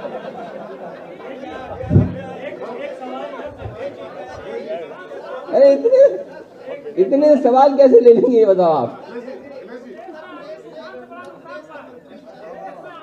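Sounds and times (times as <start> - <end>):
voices talking over one another: 1.2 - 13.0
low thump: 1.7 - 2.5.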